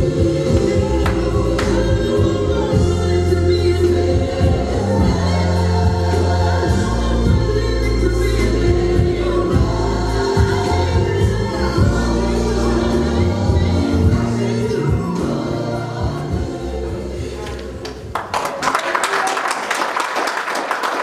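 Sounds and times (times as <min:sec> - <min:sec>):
gospel choir singing: 0:00.0 - 0:18.1
sustained bass: 0:00.0 - 0:18.2.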